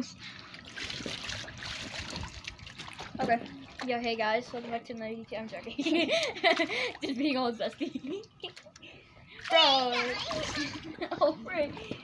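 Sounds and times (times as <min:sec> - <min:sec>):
water trickling and sloshing: 0:00.2 - 0:12.0.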